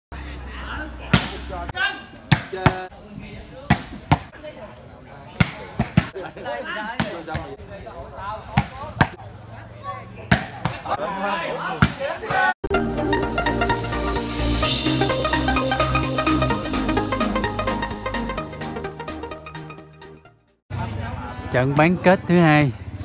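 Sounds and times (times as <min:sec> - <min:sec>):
volleyball struck by hands: 0:01.1 - 0:01.5, 0:02.2 - 0:02.8, 0:03.7 - 0:04.3, 0:05.4 - 0:06.1, 0:08.5 - 0:09.2, 0:10.3 - 0:10.9, 0:11.8 - 0:12.0.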